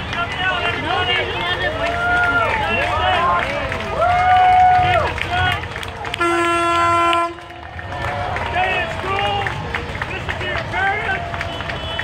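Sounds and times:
spectators cheering: 0.0s - 12.0s
vehicle air horn blast: 6.1s - 7.5s, 11.5s - 12.0s.

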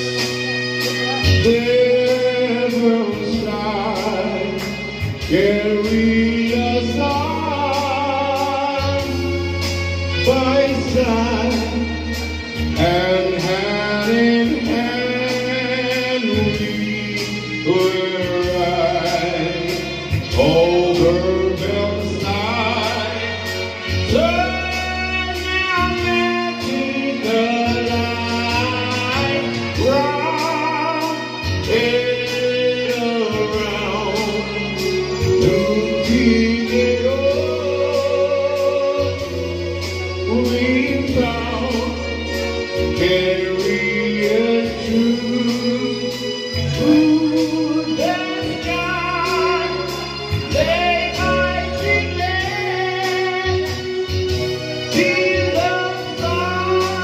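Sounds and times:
amplified instrumental backing: 0.0s - 57.0s
bass: 0.0s - 57.0s
electronic keyboard: 0.0s - 57.0s
men singing into microphones: 0.0s - 57.0s.

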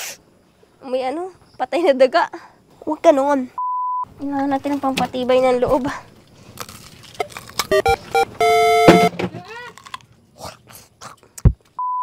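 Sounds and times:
test-tone beep: 7.7s - 9.1s
electronic clicks and blips: 7.7s - 9.2s
loud buzzy tone: 7.7s - 9.2s.

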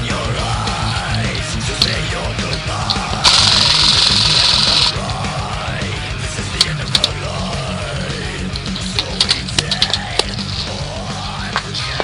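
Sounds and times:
rock music: 0.0s - 12.0s
airsoft rifle full-auto burst: 3.0s - 5.0s.

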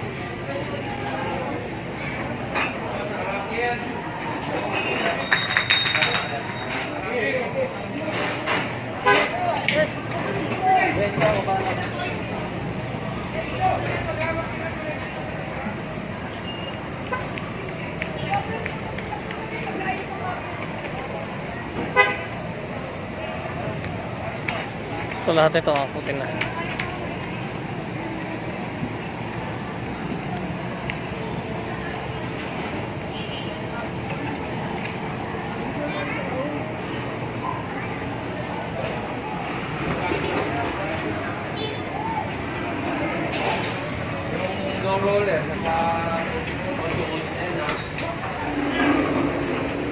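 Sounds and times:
people talking: 0.0s - 49.9s
steady traffic noise: 0.0s - 49.9s.

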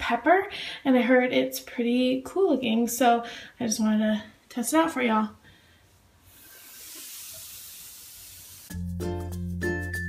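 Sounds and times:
bath bomb fizzing in water: 6.4s - 8.7s
background music: 8.7s - 10.0s.

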